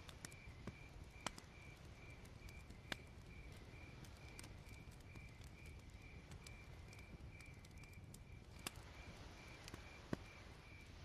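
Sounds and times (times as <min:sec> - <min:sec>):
fire crackles: 0:00.0 - 0:11.0
crickets chirping: 0:00.1 - 0:11.0.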